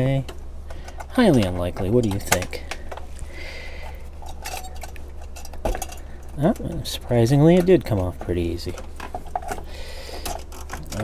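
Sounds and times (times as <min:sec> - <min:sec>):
metallic clicks of cooler: 0:00.0 - 0:11.0.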